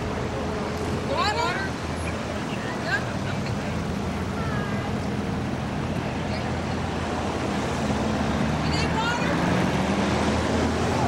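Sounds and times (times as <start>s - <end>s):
car engines passing slowly: 0.0s - 11.0s
road noise: 0.0s - 11.0s.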